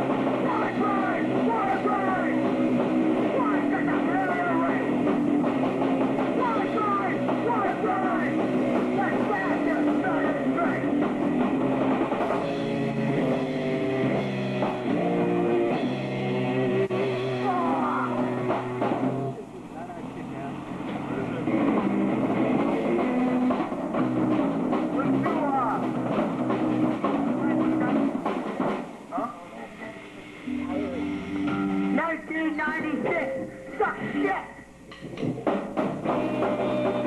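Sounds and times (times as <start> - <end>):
shouted vocals: 0.0 - 2.6, 3.2 - 5.0, 6.3 - 11.0, 17.3 - 18.6
distorted guitar chord: 0.0 - 19.5, 30.4 - 32.2
indistinct voices: 0.0 - 37.0.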